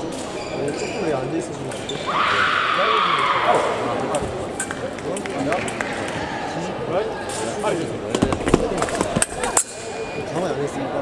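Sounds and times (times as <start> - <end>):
chatter of voices: 0.0 - 11.0.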